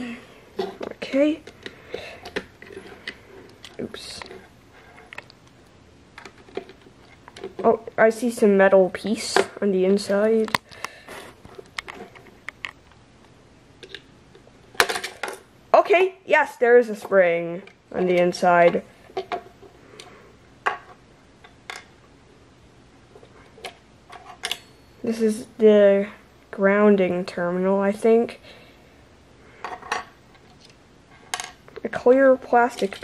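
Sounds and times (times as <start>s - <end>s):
plastic and metal parts clattering: 6.2s - 7.7s.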